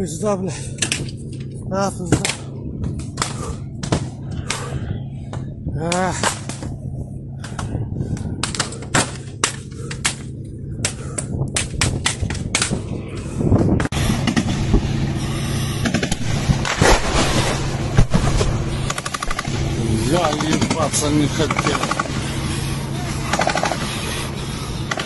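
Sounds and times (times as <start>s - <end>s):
dense steady noise with cracks: 0.0s - 13.2s, 15.8s - 25.0s
gunshots in bursts: 18.0s - 22.2s, 22.9s - 23.9s.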